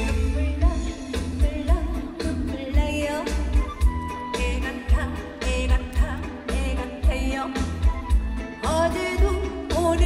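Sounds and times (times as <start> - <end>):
live band with kick drum: 0.0 - 10.0
woman singing with vibrato: 0.0 - 10.0.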